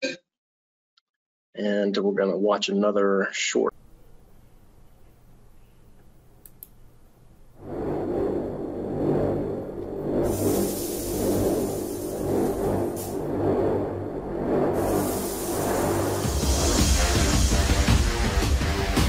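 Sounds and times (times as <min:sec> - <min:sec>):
faint clicks: 0:06.0 - 0:06.8
dense low rumble: 0:07.6 - 0:19.0
whooshes: 0:07.6 - 0:19.0
soundtrack music: 0:11.7 - 0:19.0.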